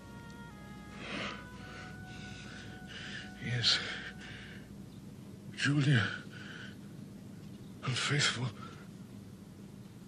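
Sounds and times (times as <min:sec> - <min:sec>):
faint held music tones: 0:00.0 - 0:10.0
man gasping and breathing hard: 0:01.0 - 0:04.6.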